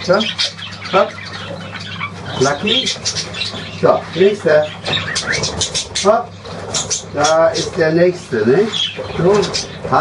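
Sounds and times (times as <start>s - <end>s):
budgerigars chattering and squawking: 0.0s - 10.0s.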